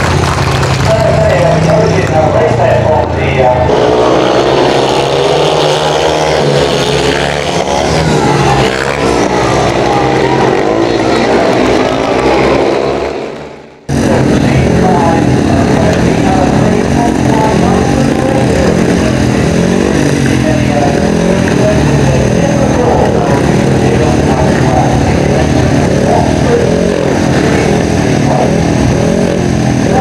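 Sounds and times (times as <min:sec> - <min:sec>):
motorcycle engines racing: 0:00.0 - 0:30.0.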